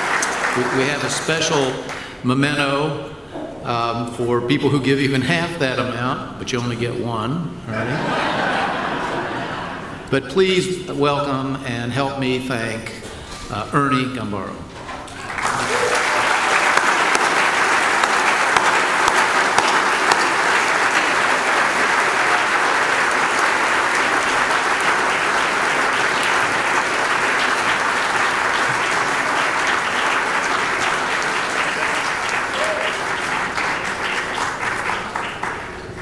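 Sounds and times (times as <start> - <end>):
audience applauding: 0.0 - 2.1, 15.1 - 36.0.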